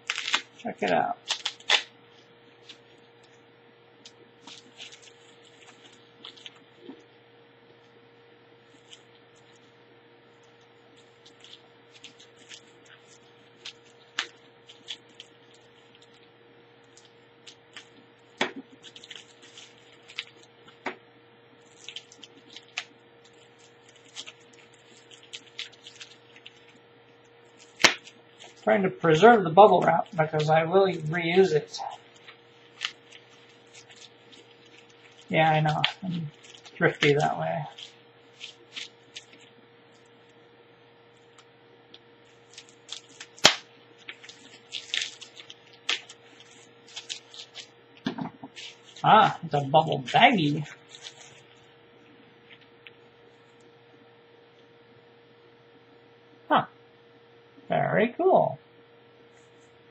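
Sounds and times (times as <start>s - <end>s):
bubble wrap snapping: 0.0s - 3.4s, 4.0s - 7.1s, 8.6s - 9.7s, 10.3s - 40.4s, 41.1s - 51.7s
bubble wrap crinkling: 0.0s - 7.9s, 8.6s - 53.7s.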